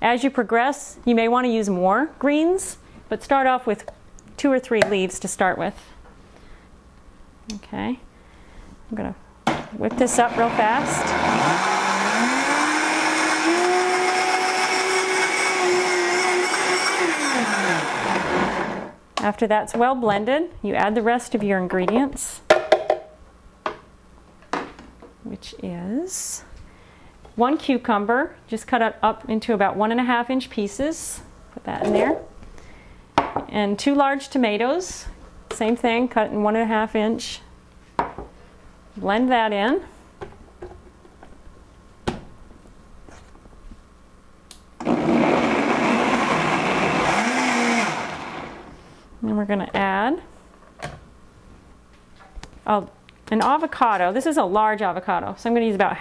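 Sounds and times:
blender motor chopping vegetables: 10.1s - 19.0s, 44.8s - 48.8s.

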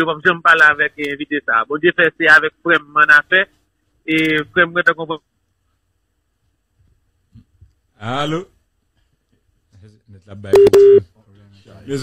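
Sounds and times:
telephone busy tone: 10.6s - 11.0s.

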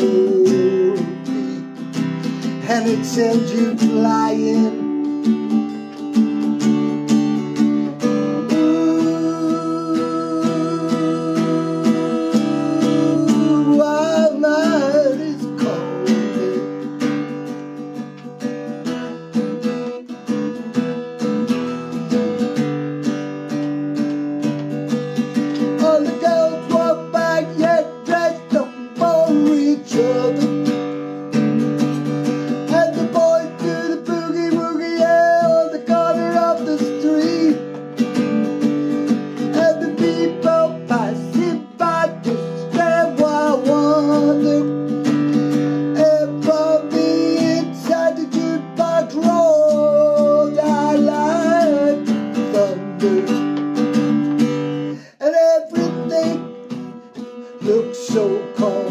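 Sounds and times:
man singing: 0.0s - 17.4s, 18.5s - 22.6s, 24.8s - 58.9s
acoustic guitar strumming: 0.0s - 58.9s.

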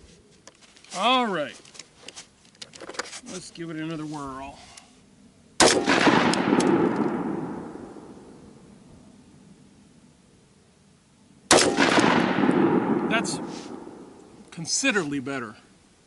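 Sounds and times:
rifle shots with long echo: 5.6s - 8.8s, 11.5s - 14.5s.

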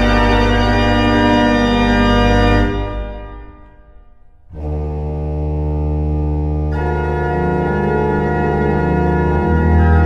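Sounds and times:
pipe organ chord: 0.0s - 10.0s.

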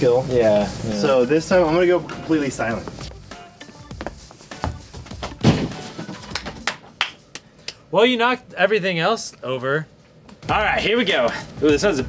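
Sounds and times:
bowling pins knocking down: 5.2s - 6.7s.

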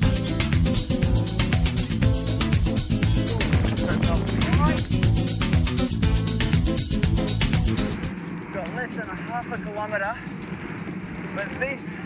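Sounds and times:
background music: 0.0s - 12.0s
bicycle road rumble: 1.0s - 12.0s
wind noise: 2.6s - 6.8s, 7.7s - 12.0s
man talking indistinctly: 3.1s - 5.2s, 8.6s - 10.3s, 11.3s - 11.9s.

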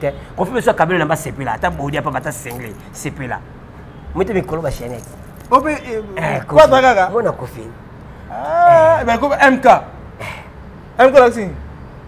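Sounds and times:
person talking: 0.4s - 3.4s, 4.2s - 7.6s.

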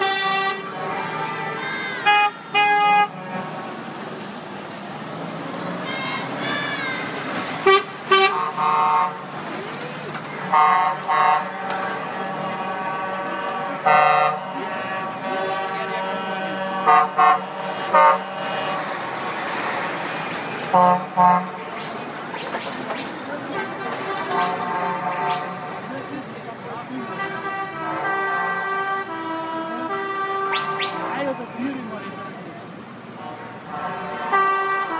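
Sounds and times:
truck horns honking: 0.0s - 22.2s, 23.3s - 34.9s
lorry engines running: 0.0s - 34.9s.

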